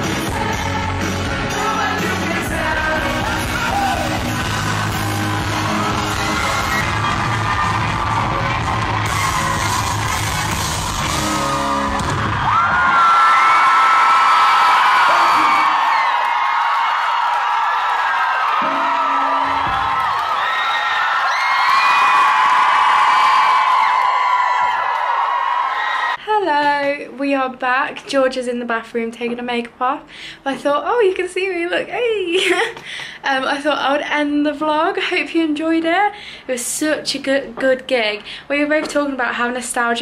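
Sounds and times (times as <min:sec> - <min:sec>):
live pop-rock band: 0:00.0 - 0:13.0
audience screaming and cheering: 0:00.0 - 0:26.2.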